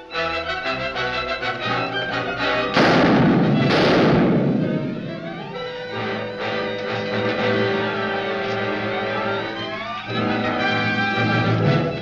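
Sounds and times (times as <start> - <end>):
dramatic orchestral film score: 0.0 - 12.0
dynamite blasts rumbling: 1.6 - 9.4.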